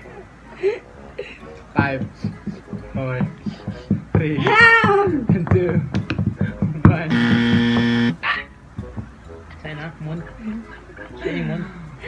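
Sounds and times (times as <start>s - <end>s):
game show buzzer: 7.1s - 8.2s.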